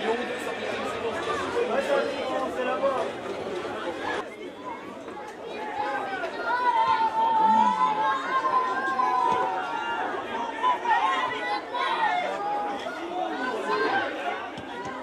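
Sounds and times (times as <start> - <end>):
people chatting outdoors: 0.0 - 15.0
person calling out loudly: 7.4 - 7.9.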